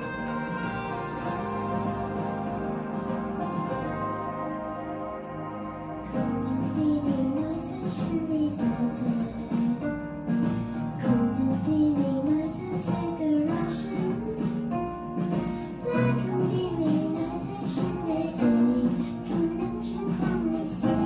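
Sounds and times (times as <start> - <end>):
guitar accompaniment: 0.0 - 21.0
girl singing pop song: 5.0 - 21.0.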